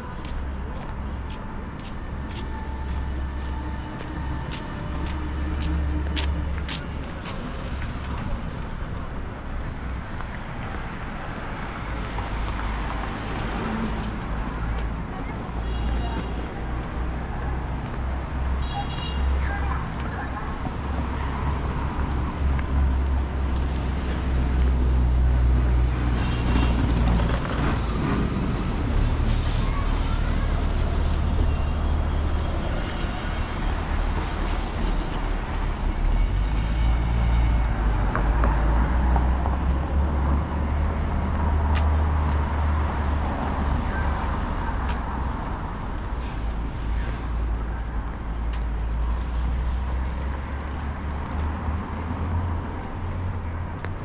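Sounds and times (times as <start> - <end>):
cars passing on street: 0.0 - 54.0.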